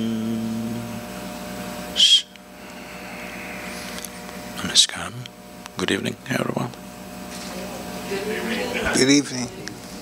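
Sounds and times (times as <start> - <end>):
man humming chanted note: 0.0 - 1.0
faint steady hum: 0.0 - 10.0.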